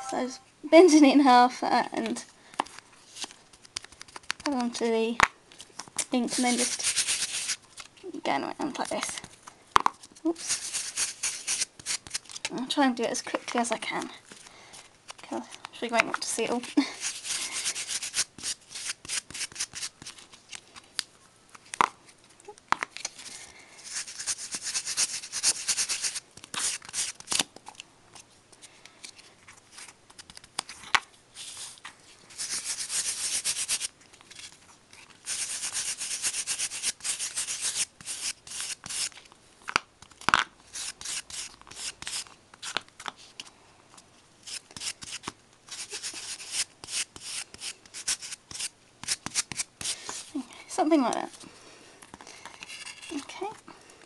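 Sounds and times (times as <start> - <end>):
card scrubbing on card stock: 6.2 - 7.6, 10.3 - 12.4, 16.4 - 20.2, 23.8 - 27.4, 31.4 - 33.9, 35.2 - 39.2, 40.7 - 42.8, 44.4 - 50.3.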